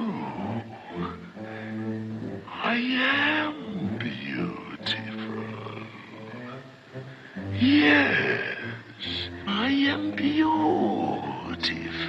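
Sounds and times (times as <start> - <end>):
drawn-out vocal sound: 0.0 - 12.0
sustained orchestral chords: 0.0 - 12.0.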